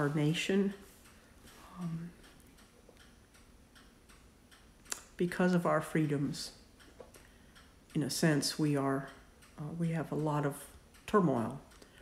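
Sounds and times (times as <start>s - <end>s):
faint regular ticking: 0.0s - 12.0s.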